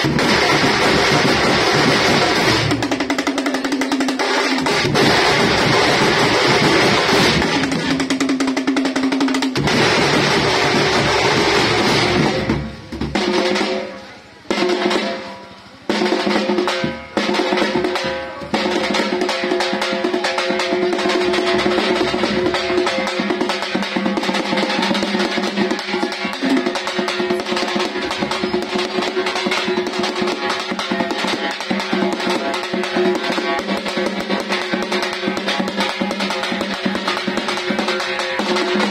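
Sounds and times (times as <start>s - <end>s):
frame drums and bass drums: 0.0s - 38.9s.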